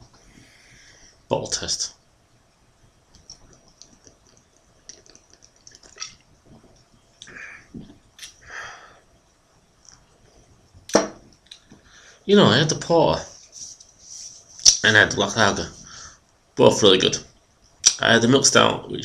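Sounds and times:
faint clicks: 0:03.1 - 0:08.4.

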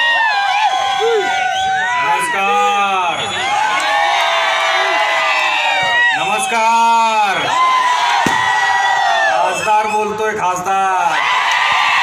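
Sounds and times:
crowd cheering: 0:00.0 - 0:12.0
man shouting over loudspeaker: 0:01.9 - 0:03.5, 0:06.0 - 0:07.6.

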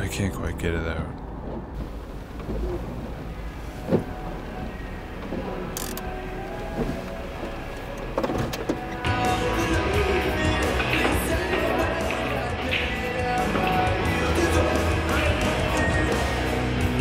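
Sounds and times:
car engine and road rumble: 0:00.0 - 0:09.3
background music: 0:03.2 - 0:17.0.

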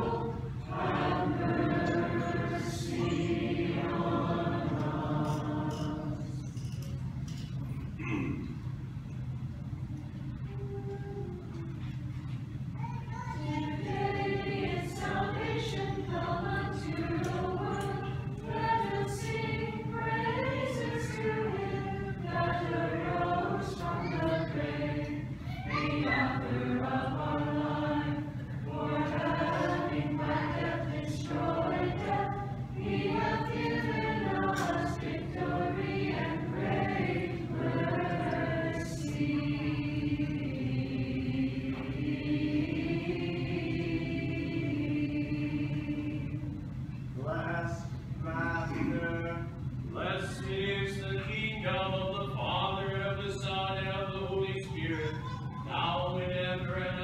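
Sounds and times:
choir singing liturgical chant: 0:00.0 - 0:06.6, 0:13.3 - 0:46.6, 0:48.6 - 0:57.0.

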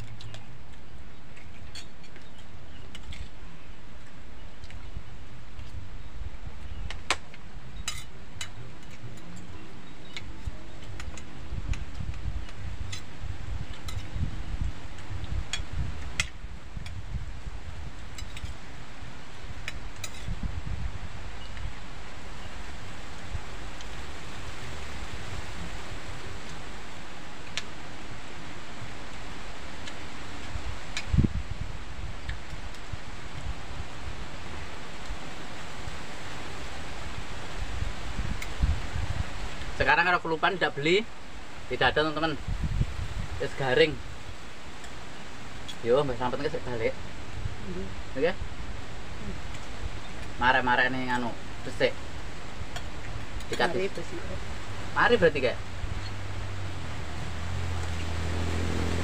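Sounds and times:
wind rumble on microphone: 0:00.0 - 0:59.0.

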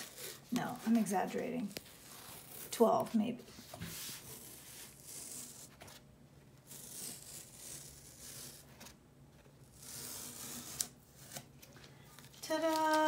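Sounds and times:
tape peeling off paper: 0:03.8 - 0:06.0, 0:06.6 - 0:09.0, 0:09.6 - 0:11.6.

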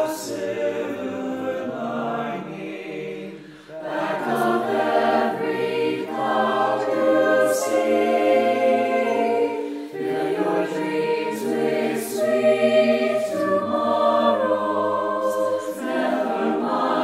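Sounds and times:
mixed choir singing chords: 0:00.0 - 0:17.0.

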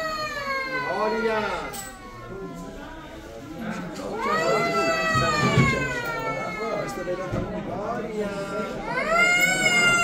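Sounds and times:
high wailing cry: 0:00.0 - 0:02.4, 0:04.1 - 0:07.2, 0:08.3 - 0:10.0.

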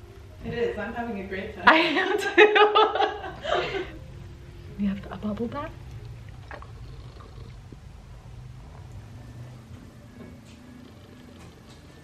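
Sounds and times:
bathwater moving: 0:05.8 - 0:08.2.

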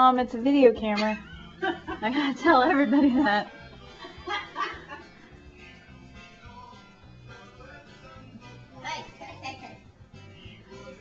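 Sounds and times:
music with steady low beat: 0:00.7 - 0:08.8.

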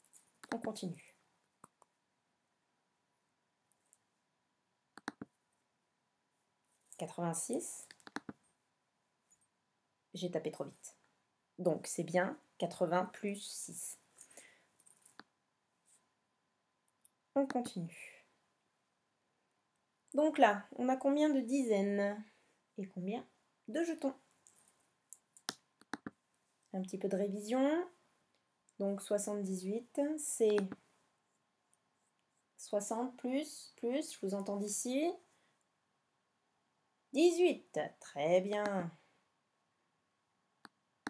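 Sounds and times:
computer keys typing: 0:05.0 - 0:05.3
computer mouse clicks: 0:05.0 - 0:05.3, 0:07.8 - 0:08.4, 0:25.2 - 0:26.2, 0:30.5 - 0:30.8.

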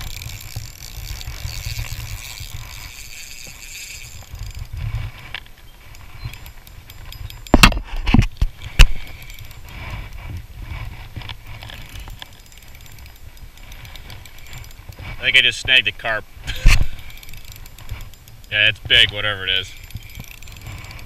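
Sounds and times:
wind rumble on microphone: 0:00.0 - 0:12.2
fishing reel handling noise: 0:00.0 - 0:21.0.

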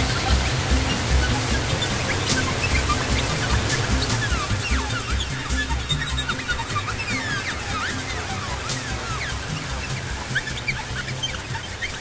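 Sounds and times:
low synthesizer drone: 0:00.0 - 0:12.0
synthesizer chirps sliding in pitch: 0:00.0 - 0:12.0.

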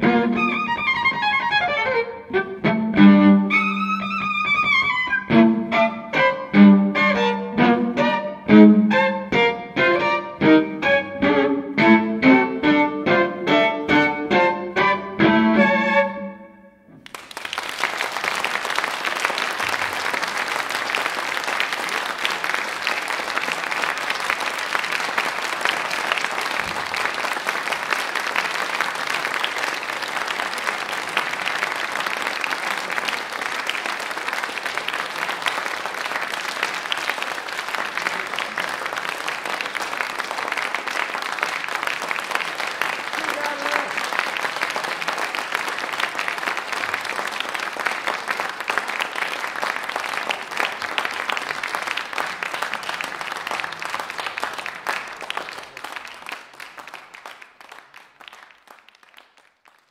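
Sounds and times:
audience applauding: 0:00.0 - 0:02.1, 0:03.4 - 0:06.4, 0:17.0 - 0:59.9.

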